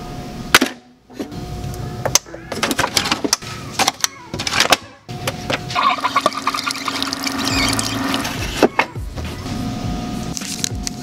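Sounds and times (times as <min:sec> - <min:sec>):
coffee maker whirring hum: 0:05.1 - 0:10.2
liquid running into a mug: 0:06.0 - 0:08.2.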